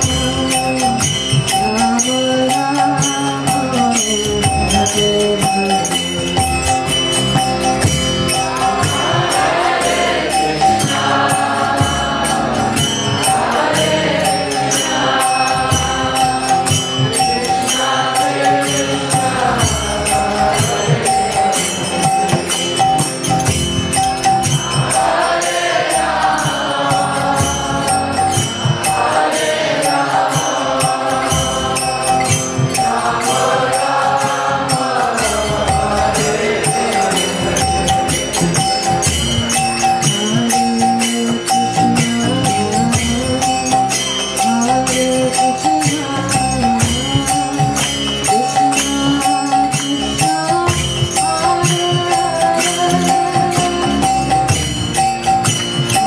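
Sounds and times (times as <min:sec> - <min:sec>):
hand cymbals striking: 0:00.0 - 0:56.0
harmonium chords: 0:00.0 - 0:56.0
metallic percussion strokes: 0:00.0 - 0:56.0
voices chanting: 0:08.4 - 0:23.1, 0:24.3 - 0:39.4.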